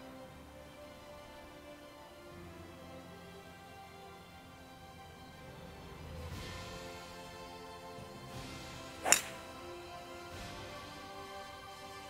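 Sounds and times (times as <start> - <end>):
background music: 0.0 - 12.0
golf club striking ball: 9.0 - 9.8.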